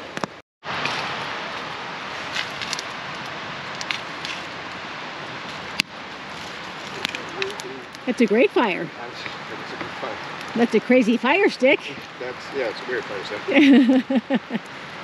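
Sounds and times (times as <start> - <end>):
campfire crackling: 0.0 - 15.0
river water rushing: 0.7 - 13.8
burning wood popping and knocking: 2.3 - 4.5, 5.5 - 8.4.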